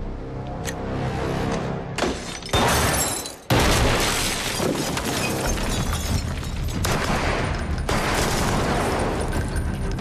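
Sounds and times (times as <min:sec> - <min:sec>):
tense film score: 0:00.0 - 0:04.0, 0:04.8 - 0:10.0
glass and plaster shattering: 0:02.0 - 0:06.9
gunfire: 0:06.8 - 0:09.3.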